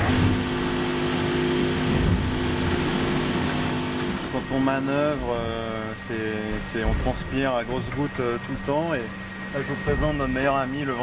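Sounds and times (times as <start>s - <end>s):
constant rushing noise: 0.0s - 11.0s
two-tone mechanical hum: 0.0s - 11.0s.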